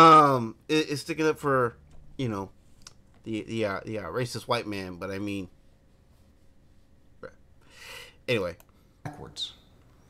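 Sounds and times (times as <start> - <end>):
man breathing in: 7.6 - 8.2.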